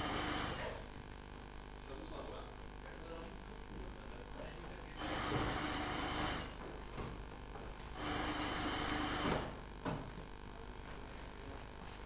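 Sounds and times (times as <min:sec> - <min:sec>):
telephone bell ringing: 0:00.0 - 0:00.9, 0:05.0 - 0:06.7, 0:08.0 - 0:09.6.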